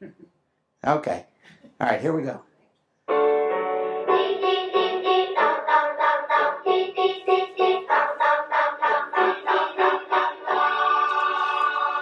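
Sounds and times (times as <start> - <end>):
children singing in unison: 4.0 - 12.0.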